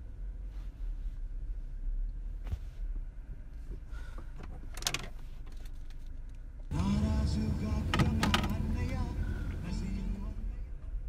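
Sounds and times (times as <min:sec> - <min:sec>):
car cabin rumble: 0:06.7 - 0:11.0.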